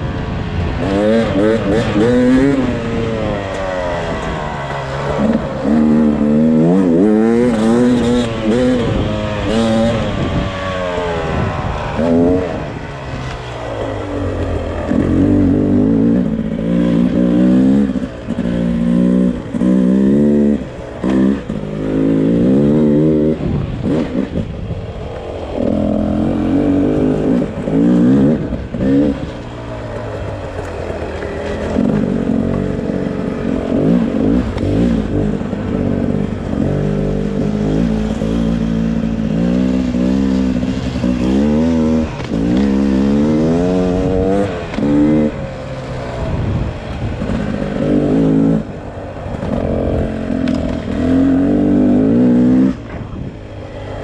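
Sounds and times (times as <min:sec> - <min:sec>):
two-stroke engine revving: 0:00.0 - 0:54.0.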